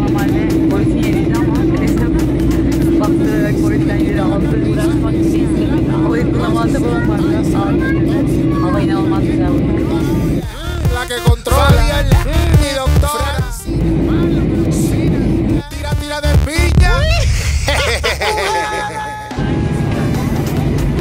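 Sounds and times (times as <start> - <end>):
airliner cabin drone: 0.0 - 21.0
voices: 0.0 - 21.0.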